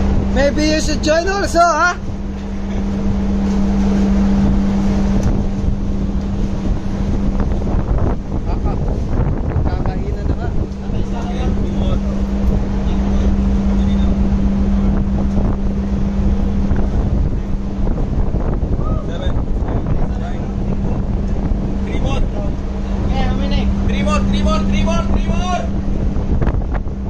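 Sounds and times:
ship rumble: 0.0s - 27.0s
steady low hum: 0.0s - 27.0s
wind buffeting microphone: 0.0s - 27.0s.

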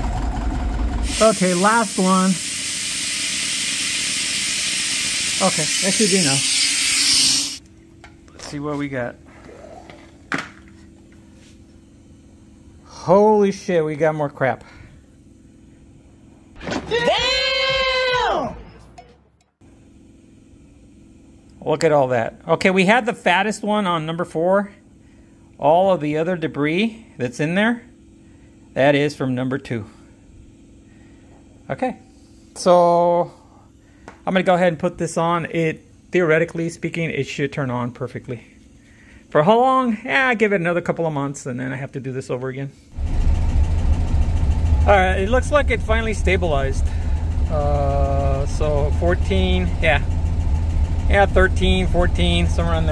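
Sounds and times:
car engine idling: 0.0s - 2.0s, 43.0s - 52.9s
man's high-pitched exclamation: 16.9s - 18.5s.

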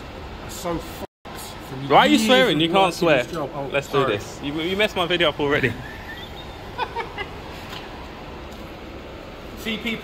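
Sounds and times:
workshop hum: 0.0s - 10.0s.

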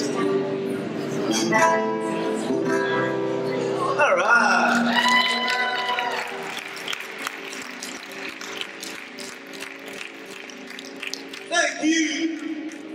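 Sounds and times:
audience clapping: 4.6s - 12.9s.

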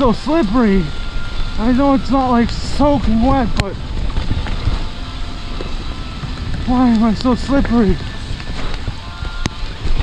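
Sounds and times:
bike rattling: 0.0s - 10.0s
bike tyres on dirt trail: 0.0s - 10.0s
wind buffeting microphone: 0.0s - 10.0s.

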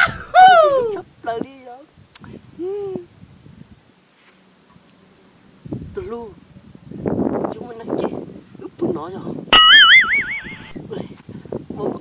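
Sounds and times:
high warbling comedy tone: 9.6s - 10.8s.

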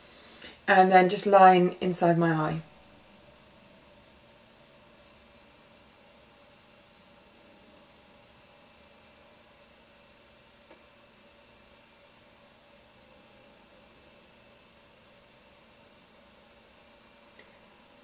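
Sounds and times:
faint hiss: 0.0s - 18.0s.

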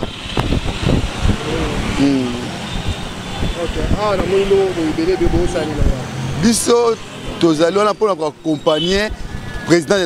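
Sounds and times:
outdoor street noise: 0.0s - 10.0s
people talking: 1.4s - 2.5s, 3.5s - 9.1s.

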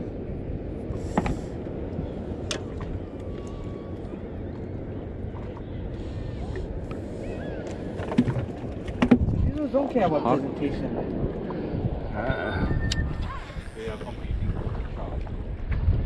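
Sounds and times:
water around a boat: 0.0s - 16.0s
wind: 0.0s - 16.0s.

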